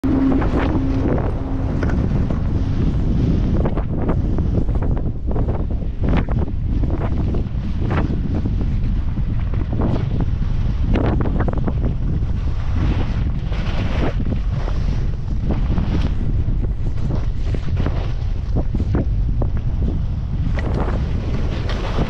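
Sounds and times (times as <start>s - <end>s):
wind buffeting microphone: 0.0s - 22.0s
skis swishing on snow: 12.3s - 18.9s, 20.6s - 22.0s.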